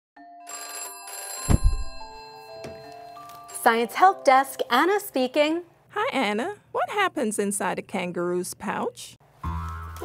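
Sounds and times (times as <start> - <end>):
telephone bell ringing: 0.2 - 3.3
loud low thump: 1.5 - 2.2.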